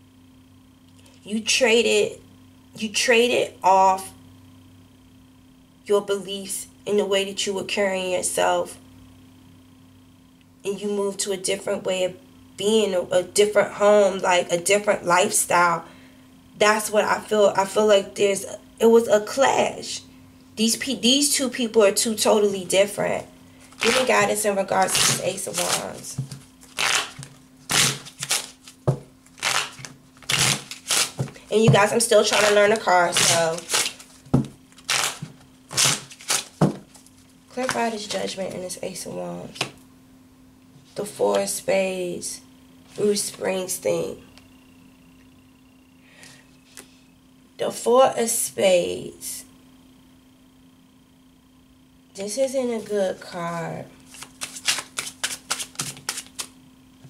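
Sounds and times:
cards being shuffled: 23.6 - 24.2, 24.8 - 38.3, 54.0 - 56.6.

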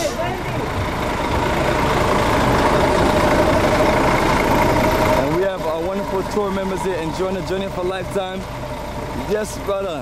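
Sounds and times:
bus engine idling with whine: 0.0 - 10.0.

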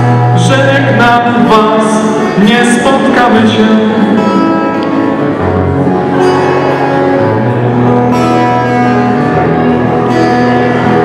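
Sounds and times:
amplified acoustic guitar: 0.0 - 11.0.

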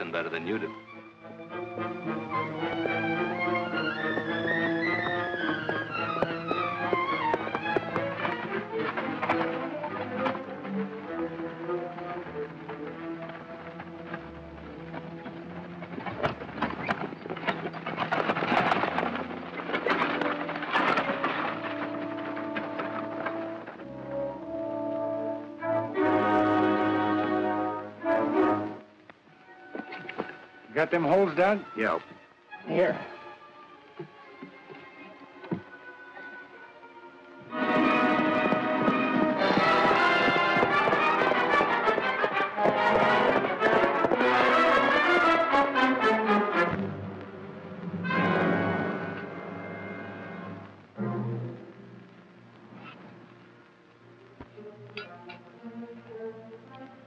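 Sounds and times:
dramatic film score: 0.0 - 53.7.

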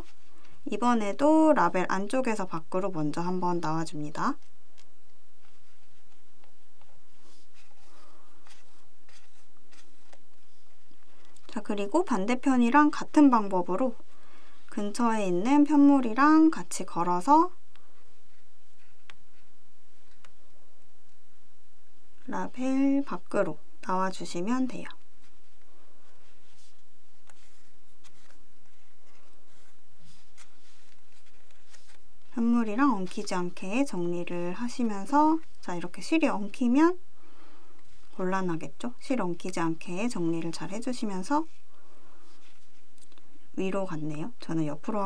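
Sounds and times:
needle and thread rustling through fabric: 0.0 - 37.0, 37.7 - 45.0.

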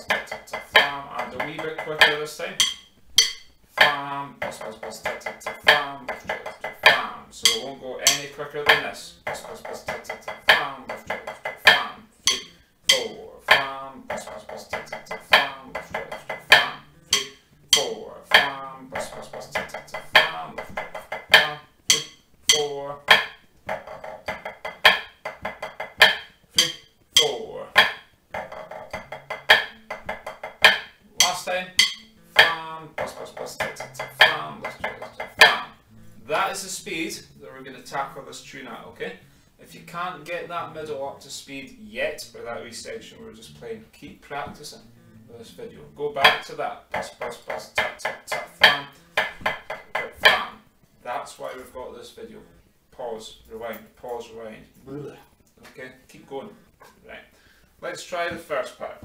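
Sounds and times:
man's voice: 0.0 - 2.6, 3.8 - 23.2, 26.6 - 27.8, 31.0 - 49.2
drumsticks on practice pad: 0.0 - 50.8.

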